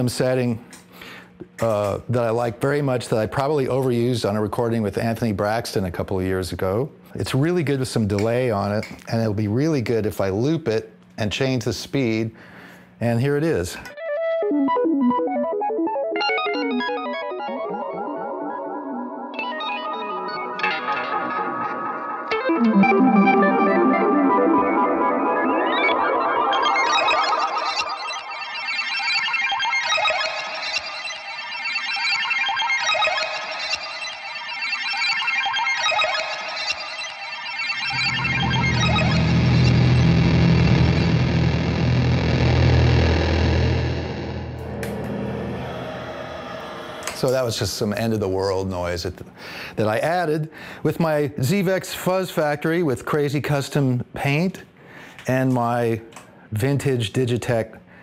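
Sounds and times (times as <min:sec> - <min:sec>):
arpeggiated electric guitar notes: 0:13.9 - 0:47.4
heavy low fuzz noise: 0:37.9 - 0:48.3.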